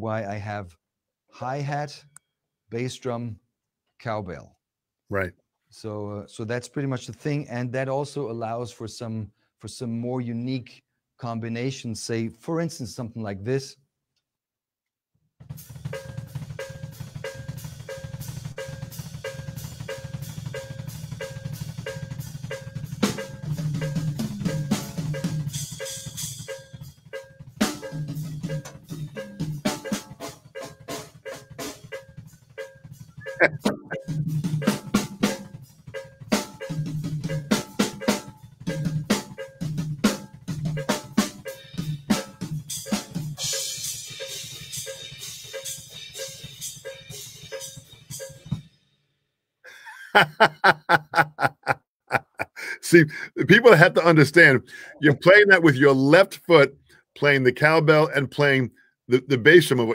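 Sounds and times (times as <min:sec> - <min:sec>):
foot-pedal cowbell: 0:15.9 - 0:48.6.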